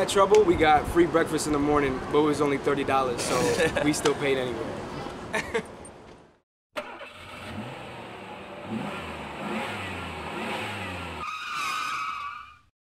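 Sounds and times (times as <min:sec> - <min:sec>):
vehicle engine revving: 0:06.8 - 0:11.2.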